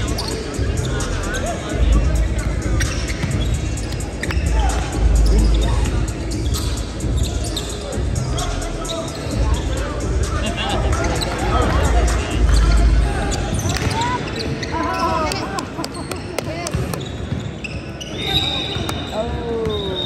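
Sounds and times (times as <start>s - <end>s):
background music: 0.0s - 13.7s
sneakers squeaking: 0.0s - 20.0s
voices in echoing hall: 0.0s - 20.0s.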